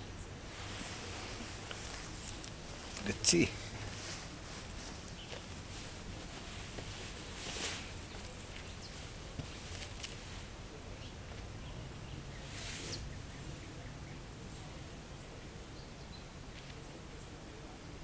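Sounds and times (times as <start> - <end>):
clothing rustling: 0.5 - 10.5
faint bird chirps: 10.7 - 17.8.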